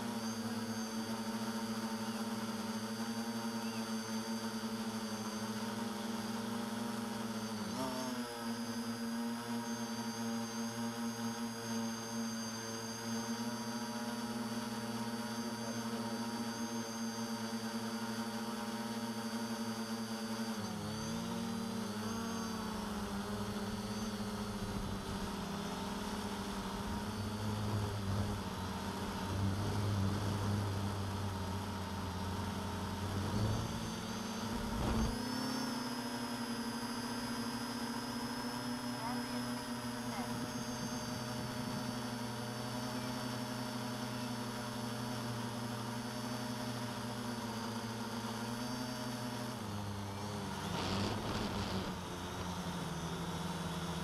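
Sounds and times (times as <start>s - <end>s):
quadcopter motors humming: 0.0s - 54.0s.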